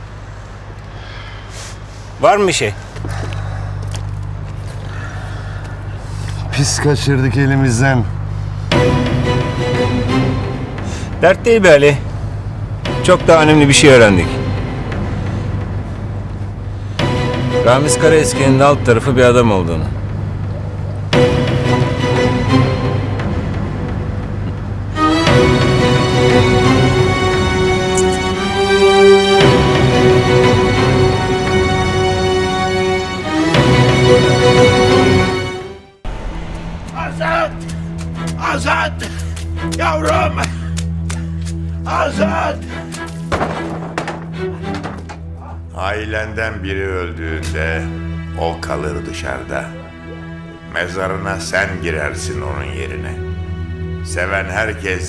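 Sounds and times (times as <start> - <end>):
steady low hum: 0.0 - 39.9
dramatic score with low drone: 0.0 - 55.0
dull thunk: 43.3 - 45.2.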